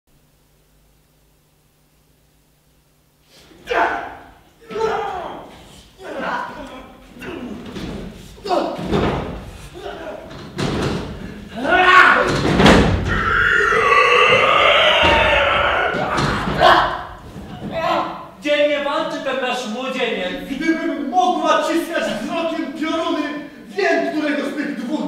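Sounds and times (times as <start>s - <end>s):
men grunting and crying out: 3.4s - 8.9s, 11.2s - 18.2s
long loud shout: 3.6s - 5.5s, 13.1s - 17.1s
bodies thudding on stage floor: 7.6s - 9.7s, 12.2s - 13.2s, 15.0s - 18.0s.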